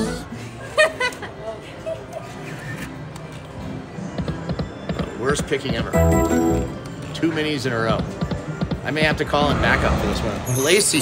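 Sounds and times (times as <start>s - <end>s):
faint casino voices: 0.0s - 11.0s
slot machine music and effects: 5.8s - 7.5s.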